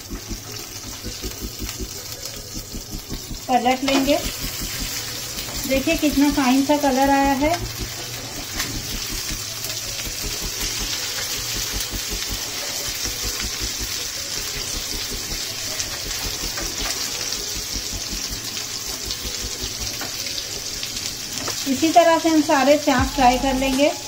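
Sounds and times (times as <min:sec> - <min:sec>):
meat sizzling in hot oil: 0:00.0 - 0:24.0.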